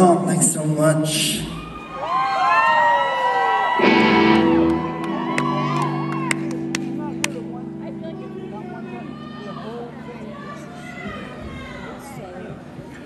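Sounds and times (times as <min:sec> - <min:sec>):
crowd whooping and cheering: 0:01.4 - 0:06.9.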